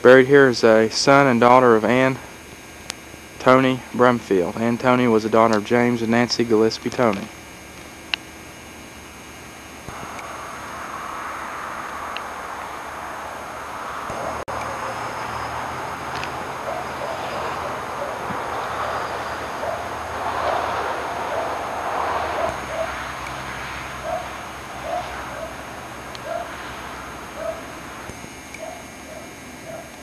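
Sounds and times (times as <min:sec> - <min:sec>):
low hum: 0:00.0 - 0:30.0
steady hiss: 0:00.0 - 0:30.0
distant animal calls: 0:14.0 - 0:27.8, 0:28.6 - 0:30.0.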